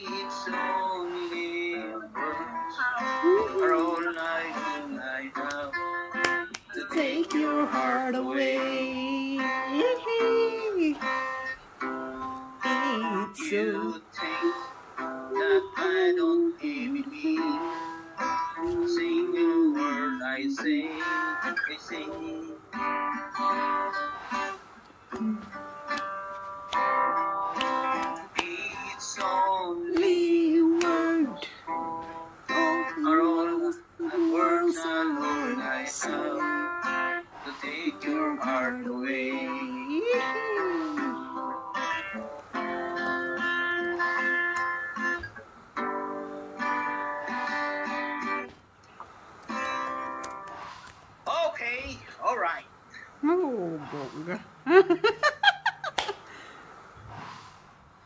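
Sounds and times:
man singing held notes: 0.0s - 11.1s, 12.6s - 22.7s, 27.5s - 31.7s, 32.5s - 41.4s
acoustic guitar strumming: 0.0s - 48.6s, 49.3s - 50.6s.

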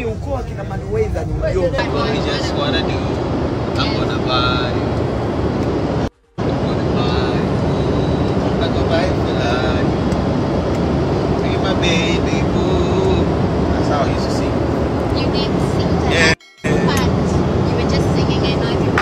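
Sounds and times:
people talking indistinctly: 0.0s - 5.0s, 6.4s - 10.3s, 11.2s - 19.0s
aircraft cabin roar: 0.0s - 19.0s.

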